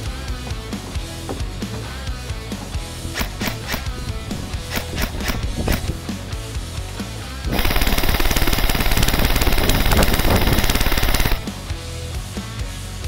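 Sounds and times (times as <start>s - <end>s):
background music: 0.0s - 9.0s, 10.8s - 13.0s
airsoft rifle full-auto burst: 3.1s - 6.0s, 7.5s - 11.5s.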